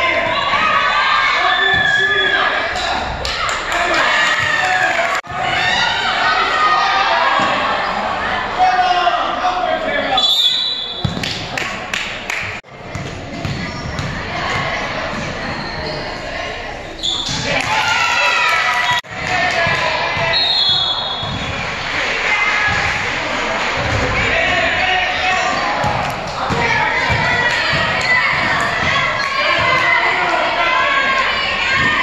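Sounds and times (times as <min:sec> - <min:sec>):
basketball bouncing on gym floor: 0:11.0 - 0:11.4, 0:12.9 - 0:14.6, 0:25.8 - 0:29.8
girls calling and chatting: 0:25.7 - 0:32.0.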